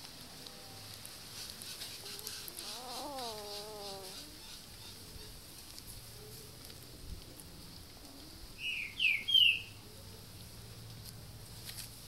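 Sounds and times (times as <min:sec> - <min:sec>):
puppy whining: 0:02.0 - 0:04.4.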